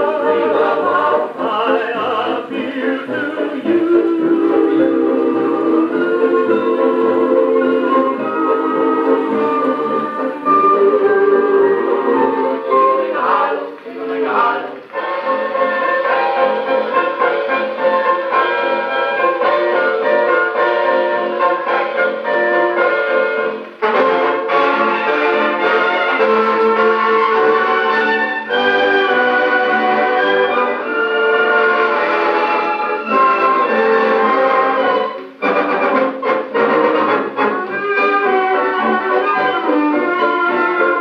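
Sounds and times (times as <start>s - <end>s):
old dance orchestra recording: 0.0s - 41.0s.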